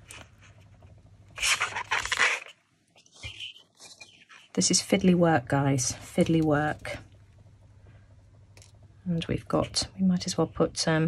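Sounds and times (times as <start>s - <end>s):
plastic film rustling: 1.4s - 4.5s.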